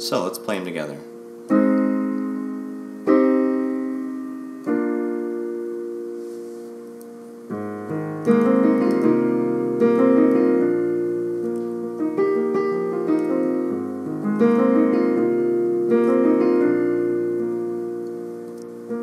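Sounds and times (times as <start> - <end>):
piano chords ringing: 0.0 - 19.0.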